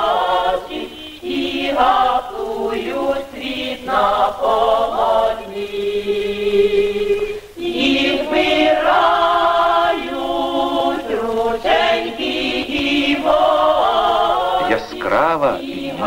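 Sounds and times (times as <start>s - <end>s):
choir singing: 0.0s - 16.0s.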